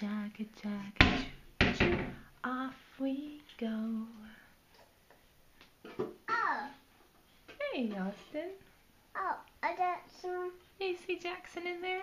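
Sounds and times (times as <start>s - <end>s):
woman singing: 0.0s - 1.3s, 2.3s - 4.5s, 10.8s - 12.0s.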